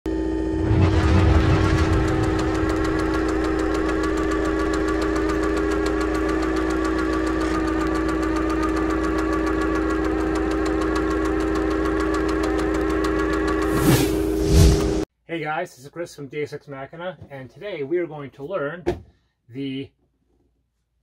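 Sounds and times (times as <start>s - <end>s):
machinery hum: 0.1s - 15.0s
fast mechanical ticking: 1.2s - 13.7s.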